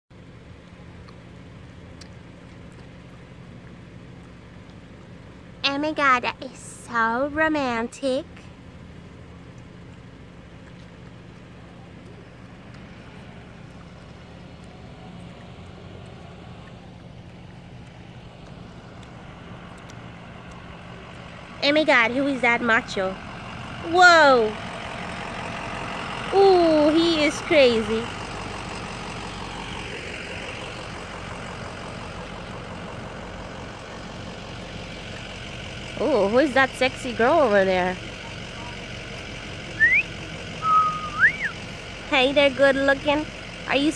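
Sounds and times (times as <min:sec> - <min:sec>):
vehicle engine idling: 0:00.1 - 0:43.9
wolf whistle: 0:39.7 - 0:41.6.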